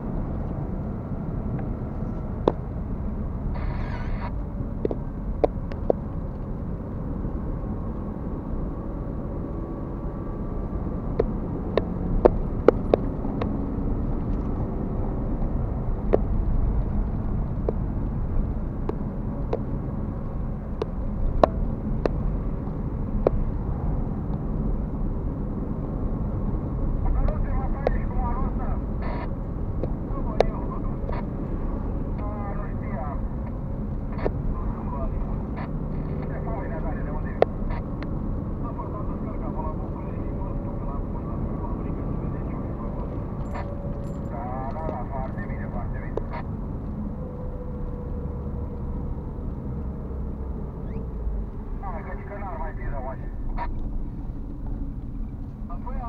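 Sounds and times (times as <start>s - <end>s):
tyre and engine rumble: 0.0s - 56.0s.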